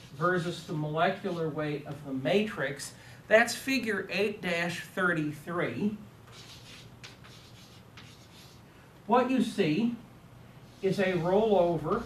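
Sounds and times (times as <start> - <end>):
chalk scratching on chalkboard: 0.0 - 1.6, 6.3 - 8.6.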